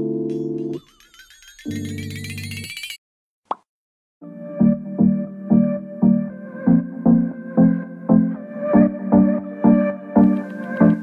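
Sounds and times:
low synth chord: 4.2s - 11.0s.

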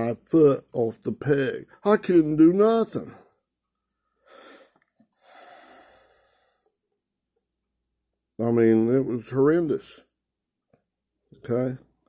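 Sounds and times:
man breathing close to microphone: 4.0s - 6.8s.

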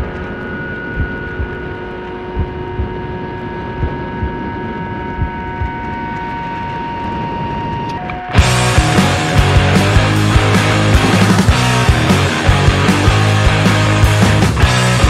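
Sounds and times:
steady whistling tones: 0.0s - 11.6s.

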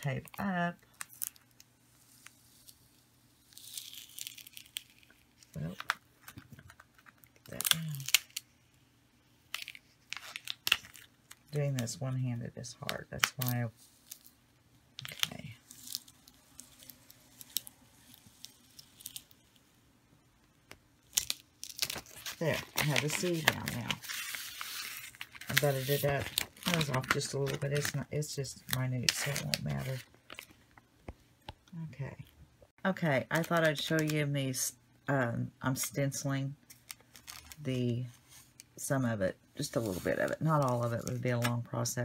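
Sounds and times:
tape peeling with soft hiss: 0.9s - 5.5s, 15.6s - 19.7s
tape peeling crackles: 0.9s - 8.6s, 9.5s - 11.5s, 15.0s - 19.6s, 21.0s - 28.0s, 36.7s - 37.6s.

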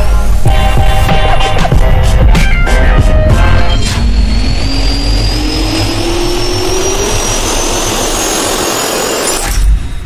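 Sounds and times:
jet engine spooling up: 3.3s - 10.0s.

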